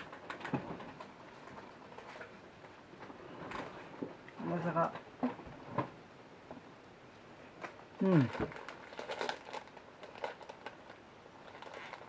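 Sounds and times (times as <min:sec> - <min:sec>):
plastic wrapper crinkling: 0:07.6 - 0:12.0
person grunting: 0:08.0 - 0:08.4.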